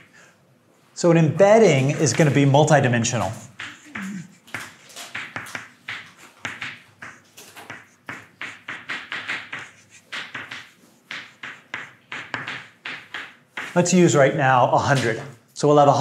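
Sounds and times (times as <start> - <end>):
chalk on blackboard: 3.4 - 14.0.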